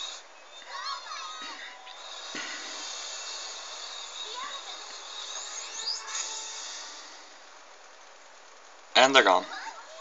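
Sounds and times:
soft background music: 0:01.8 - 0:07.4
short rising high tones: 0:02.0 - 0:07.3.

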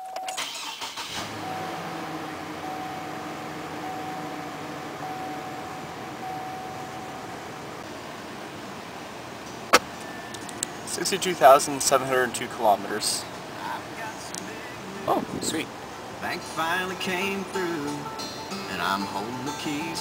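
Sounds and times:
engine cranking and idling: 0:00.3 - 0:07.8
door-ajar warning chime: 0:01.4 - 0:07.5.

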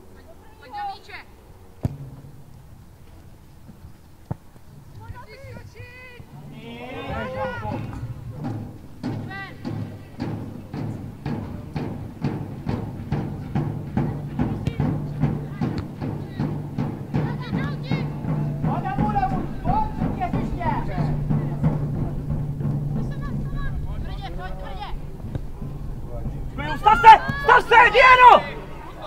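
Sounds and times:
voices calling out: 0:05.0 - 0:12.8, 0:13.5 - 0:29.0
rhythmic percussive beating: 0:07.2 - 0:29.0.

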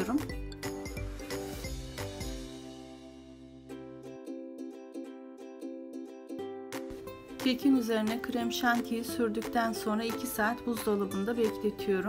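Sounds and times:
light plucked instrumental music: 0:00.0 - 0:12.0.

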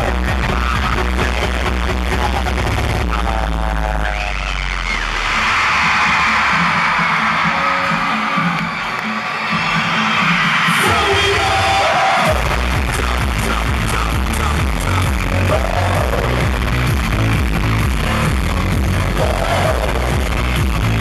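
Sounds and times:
live concert music with bass beat: 0:00.0 - 0:21.0
crowd screaming: 0:04.8 - 0:12.7, 0:19.1 - 0:20.2.

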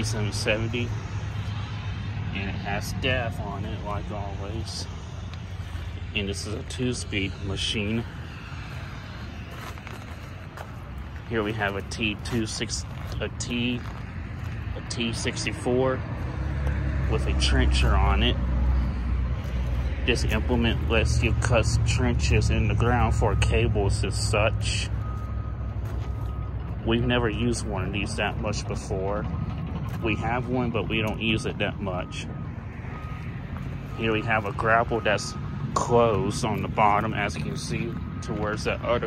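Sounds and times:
low outdoor rumble: 0:00.0 - 0:39.0
footsteps on gravel: 0:00.9 - 0:22.0, 0:24.9 - 0:39.0
faint high beeps: 0:31.0 - 0:36.4.

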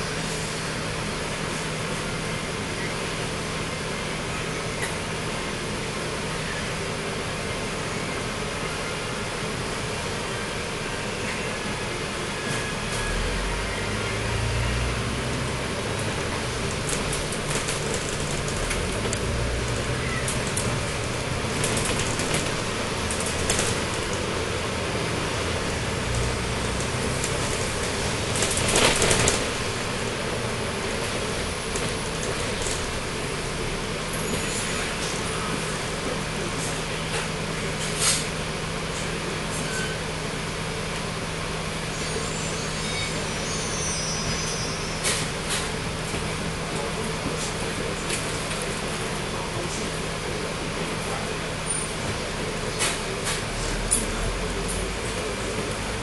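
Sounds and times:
bus diesel engine: 0:00.0 - 0:56.0
bus body rattling: 0:13.8 - 0:40.1, 0:42.6 - 0:56.0.

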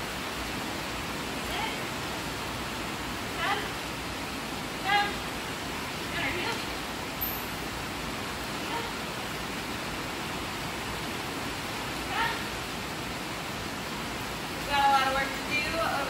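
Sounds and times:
steady background hiss: 0:00.0 - 0:16.0.

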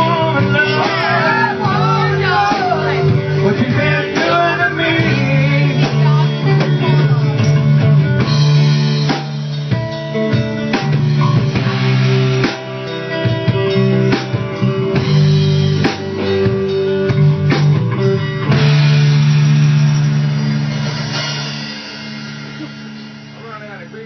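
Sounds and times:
drum hits: 0:00.0 - 0:24.0
electric guitar: 0:00.0 - 0:24.0.

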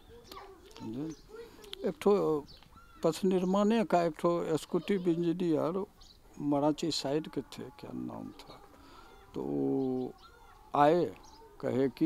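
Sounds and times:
man speaking: 0:03.0 - 0:08.7, 0:09.4 - 0:12.0.

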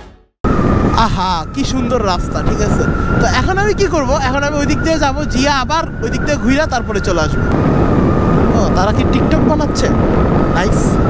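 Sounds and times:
wind on microphone: 0:00.4 - 0:11.0.

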